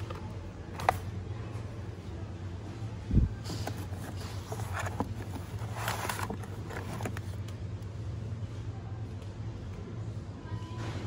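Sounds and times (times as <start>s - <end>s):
supermarket background hum: 0.0s - 11.0s.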